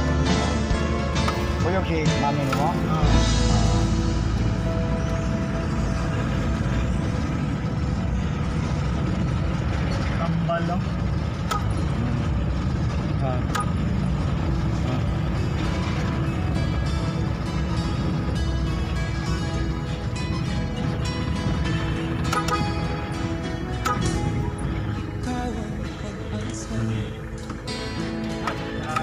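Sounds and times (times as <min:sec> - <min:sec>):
background music: 0:00.0 - 0:29.0
car engine and road rumble: 0:00.0 - 0:29.0
sharp clicks: 0:11.4 - 0:11.8.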